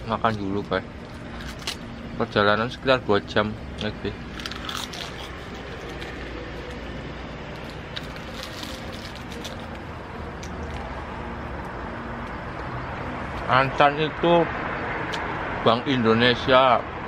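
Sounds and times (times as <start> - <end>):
street background noise: 0.0 - 17.0
biting and chewing crisp food: 0.2 - 2.0, 3.8 - 11.0
plastic wrapper crackling: 7.6 - 9.8.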